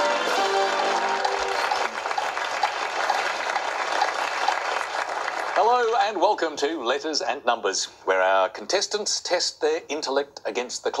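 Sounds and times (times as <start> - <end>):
game show theme music: 0.0 - 2.5
studio audience applause: 0.0 - 6.0.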